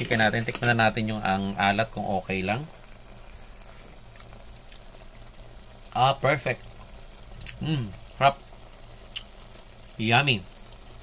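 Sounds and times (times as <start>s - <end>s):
pot simmering with soft bubbling: 0.0s - 11.0s.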